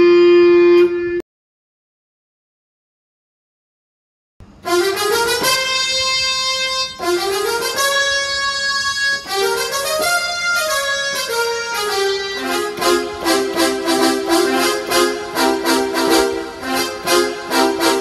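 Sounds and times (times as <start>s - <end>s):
synth lead melody: 4.6s - 18.0s.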